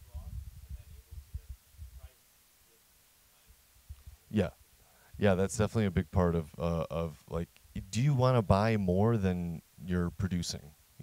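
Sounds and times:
faint off-microphone speech: 0.0 - 4.6.

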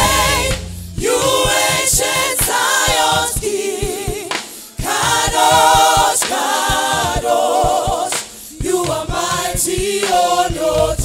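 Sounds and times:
gospel choir singing: 0.0 - 11.0
low repeating beat: 0.0 - 11.0.

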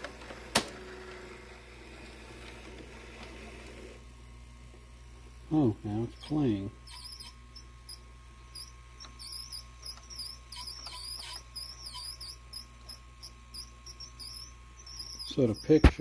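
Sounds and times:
steady low hum: 0.0 - 16.0
high-pitched tape transport squeaking: 5.5 - 16.0.

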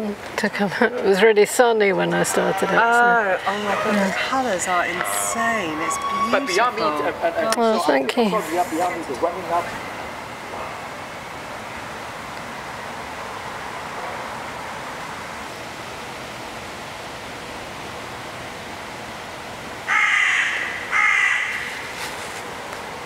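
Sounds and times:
outdoor background noise: 0.0 - 23.0
loud bird calls: 19.9 - 22.0.

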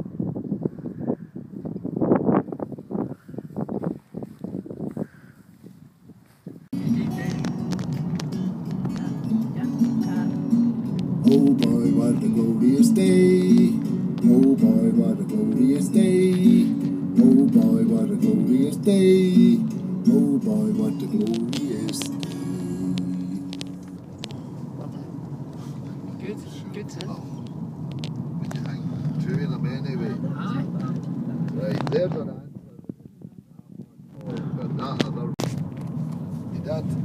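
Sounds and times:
steady musical accompaniment: 6.8 - 26.6
person singing a melody: 11.2 - 23.9.

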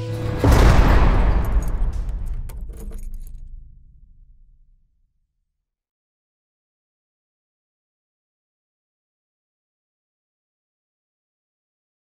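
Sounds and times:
heavy metal clang: 0.0 - 4.8
metal jangling and rattling: 1.2 - 3.6.

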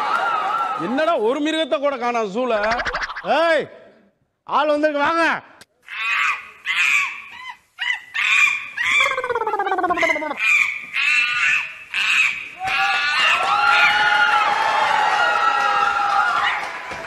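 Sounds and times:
high-pitched bird-like cries: 5.9 - 12.6.

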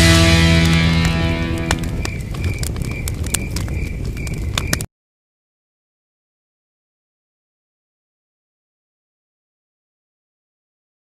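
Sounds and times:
music chord ringing: 0.0 - 1.9
campfire crackling and popping: 0.0 - 4.9.

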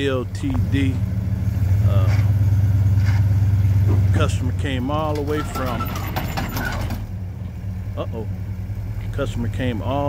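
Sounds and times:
car engine running at low speed: 0.0 - 10.0.

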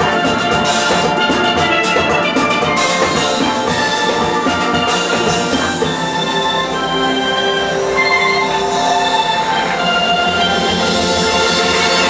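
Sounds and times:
drum kit: 0.0 - 6.7
steel pans playing ballad: 0.0 - 12.0.

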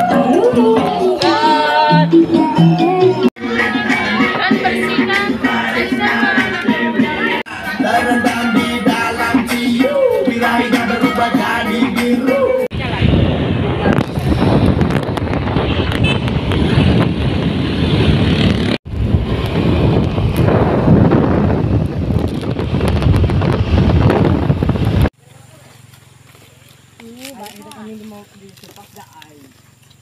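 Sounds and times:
wind buffeting microphone: 12.7 - 25.2.

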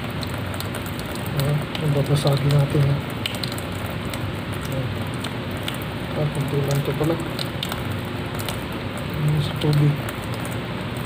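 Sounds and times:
tap water running into sink: 0.0 - 11.0.

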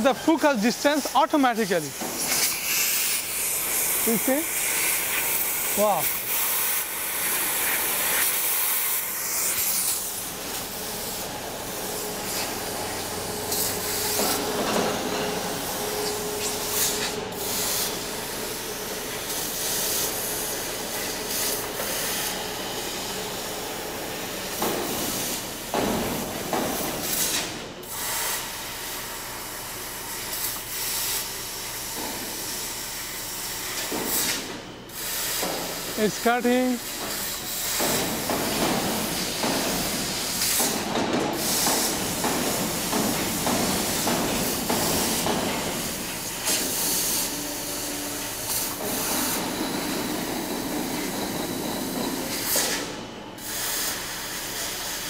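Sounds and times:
hiss of laser cutter assist gas: 0.0 - 55.0.

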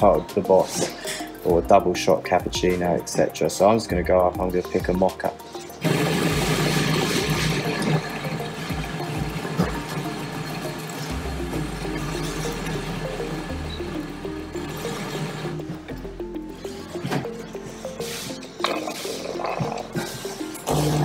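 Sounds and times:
background music: 0.0 - 21.0
coffee machine running: 5.8 - 15.8.

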